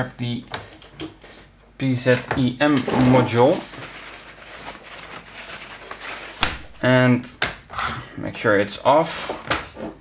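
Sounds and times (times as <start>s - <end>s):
man speaking: 1.8s - 3.7s, 6.7s - 7.4s, 8.0s - 9.2s
rustling of parts being handled: 2.1s - 6.8s.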